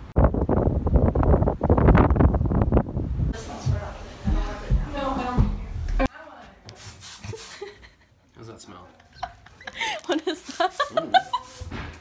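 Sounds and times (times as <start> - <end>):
people laughing: 8.9 - 11.6.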